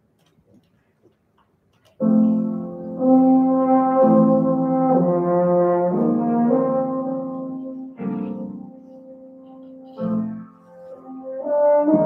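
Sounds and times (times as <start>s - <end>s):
piano playing: 2.0s - 12.0s
faint rustles: 7.6s - 11.5s.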